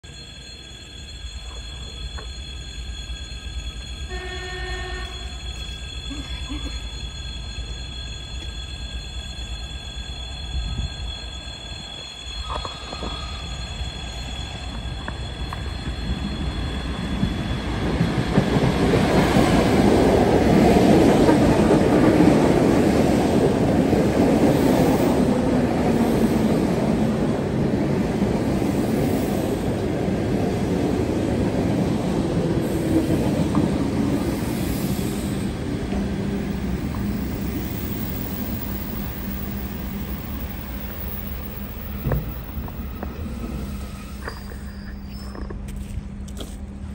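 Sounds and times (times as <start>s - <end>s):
electric train wheels on rails: 0.0s - 46.9s.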